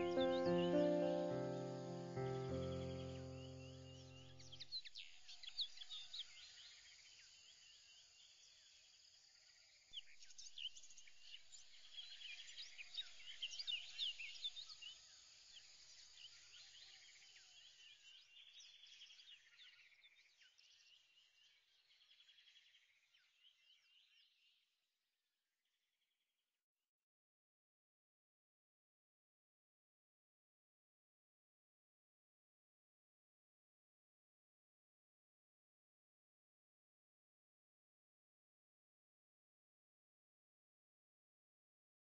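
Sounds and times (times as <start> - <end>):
background music chord: 0.0 - 4.4
birds chirping and trilling: 0.0 - 6.8.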